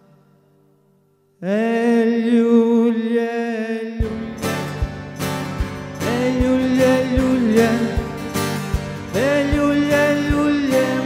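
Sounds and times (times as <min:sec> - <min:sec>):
acoustic guitar chord: 0:04.0 - 0:11.0.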